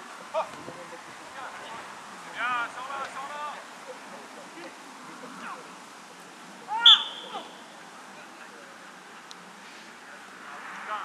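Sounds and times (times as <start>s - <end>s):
referee whistle blast: 6.8s - 7.6s.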